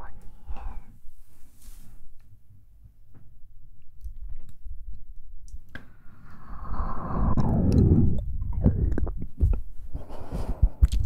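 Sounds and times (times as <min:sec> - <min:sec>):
soft hiss: 0:00.0 - 0:02.3
soft low thumps: 0:07.0 - 0:10.0.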